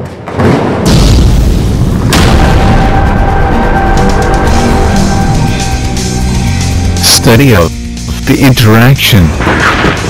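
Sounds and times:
deep boom: 0:00.4 - 0:07.0
sharp impact: 0:00.5 - 0:07.0
dramatic music with sustained notes: 0:00.9 - 0:10.0.

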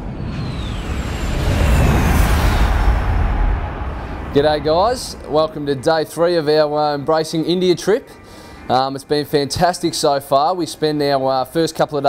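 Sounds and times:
jet aircraft flyover: 0:00.0 - 0:07.0.

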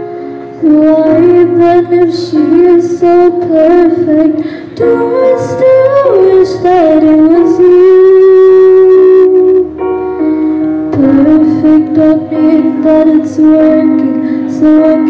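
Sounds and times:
electric keyboard: 0:00.0 - 0:15.0.

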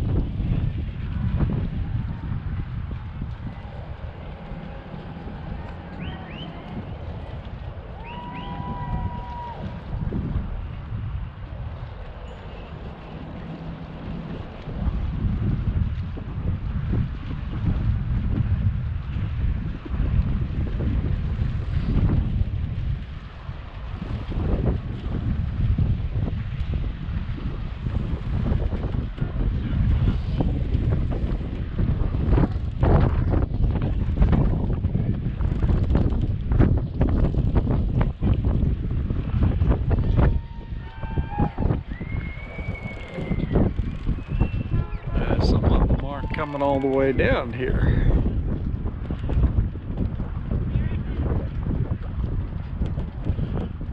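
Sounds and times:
wind buffeting microphone: 0:00.0 - 0:53.9.

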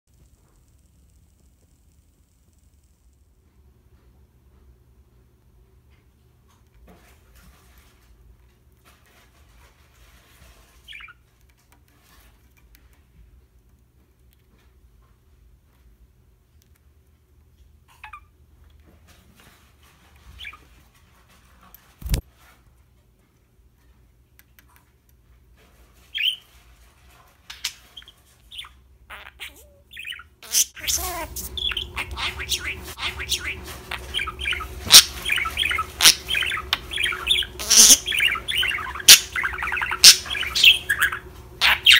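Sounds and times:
low room hum: 0:00.1 - 0:41.9
rustles and clicks on perch: 0:18.6 - 0:22.8
budgerigar chirp: 0:28.6 - 0:41.9.

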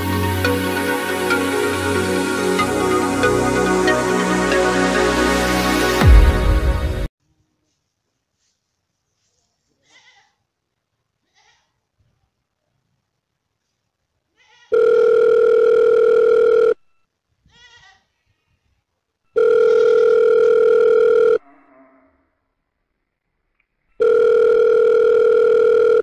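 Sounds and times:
telephone ringing tone: 0:14.7 - 0:16.8, 0:19.4 - 0:21.4, 0:24.0 - 0:26.0.

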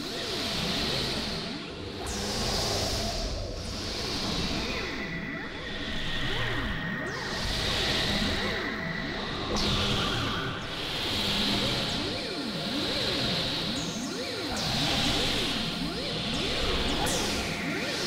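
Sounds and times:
steady held synthesizer tones: 0:01.0 - 0:18.0.

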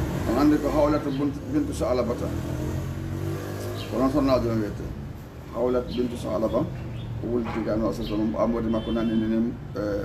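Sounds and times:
vehicle engine humming: 0:00.0 - 0:08.8.

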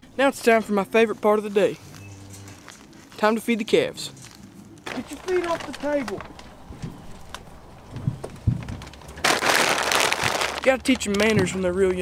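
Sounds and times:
plastic sack crumpling: 0:04.2 - 0:11.8
dull low thumps: 0:05.6 - 0:12.0.

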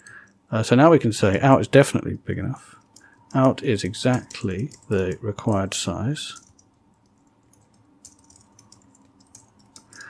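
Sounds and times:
typing on keyboard: 0:02.8 - 0:10.0.

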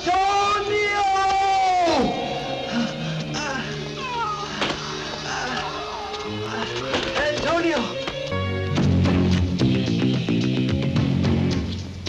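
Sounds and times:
man crying out in pain: 0:01.9 - 0:06.8.

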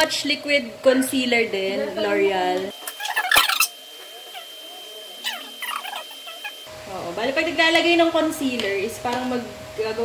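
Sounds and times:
squeaky sped-up voices: 0:02.9 - 0:06.7.

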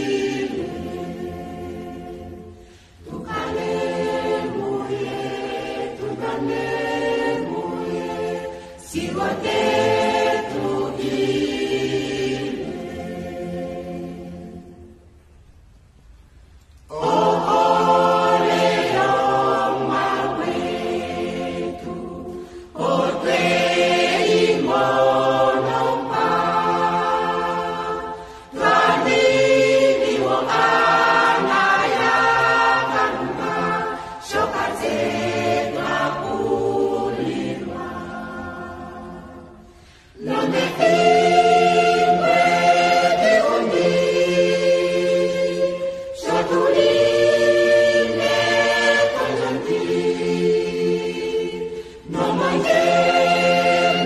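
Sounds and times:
choir singing gospel in harmony: 0:00.0 - 0:15.2, 0:16.8 - 0:54.0.

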